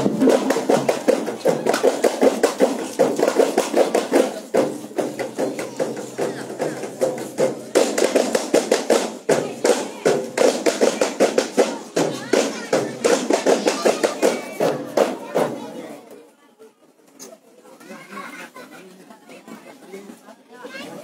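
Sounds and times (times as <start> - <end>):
hand drums beating: 0.0 - 15.8
crowd voices: 0.0 - 21.0.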